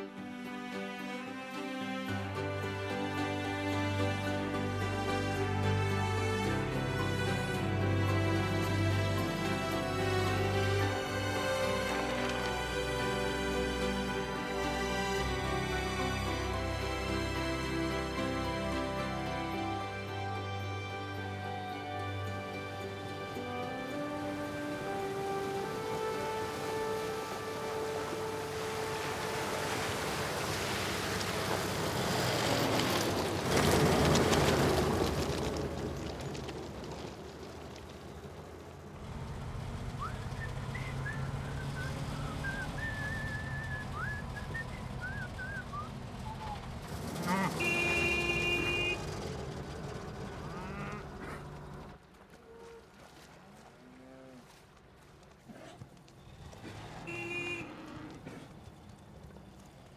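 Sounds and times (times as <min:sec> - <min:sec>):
soundtrack music: 0:00.0 - 0:29.8
truck splashing through water: 0:01.7 - 0:59.9
truck engine running: 0:02.5 - 0:52.4
horn honking: 0:03.1 - 0:30.7, 0:40.0 - 0:52.8, 0:56.5 - 0:58.5
man whistling: 0:40.0 - 0:46.6.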